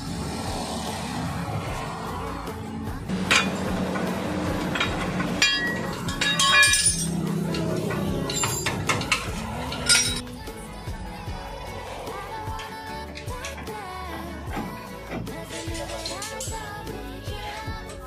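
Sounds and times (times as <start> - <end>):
background music: 0.0 - 18.0
metal tools clinking: 3.2 - 10.3, 15.4 - 16.8.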